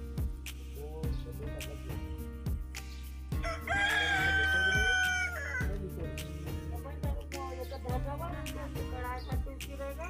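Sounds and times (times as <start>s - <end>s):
background music with beat: 0.0s - 10.0s
rooster crowing: 3.4s - 5.7s.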